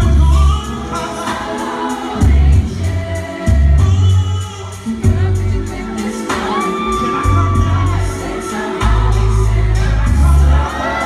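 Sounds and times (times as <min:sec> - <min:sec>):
deep bass notes: 0:00.0 - 0:00.6, 0:02.2 - 0:04.4, 0:05.0 - 0:05.9, 0:07.0 - 0:10.8
band playing slow jam: 0:00.0 - 0:11.0
man singing: 0:00.0 - 0:11.0.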